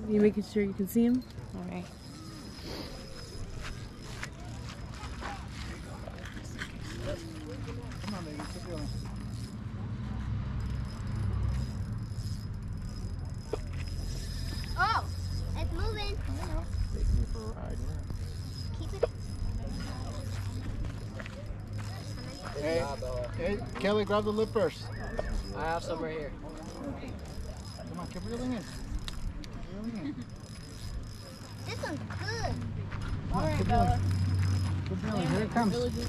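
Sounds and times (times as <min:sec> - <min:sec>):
adults and children talking: 0:00.0 - 0:36.0.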